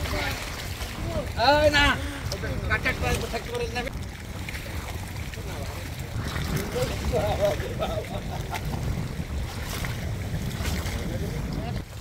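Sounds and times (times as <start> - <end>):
water lapping: 0.0 - 12.0
wind buffeting microphone: 0.0 - 12.0.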